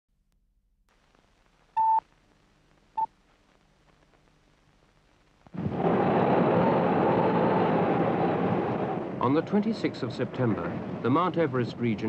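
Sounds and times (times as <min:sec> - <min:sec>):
faint low hum: 0:00.1 - 0:12.0.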